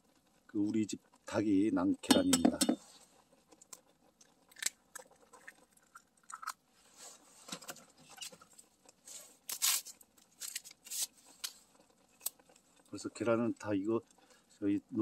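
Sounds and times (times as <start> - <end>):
quiet clicks and crackles: 0.0 - 6.8, 7.4 - 15.0
egg cracking: 2.0 - 6.8, 7.5 - 13.0.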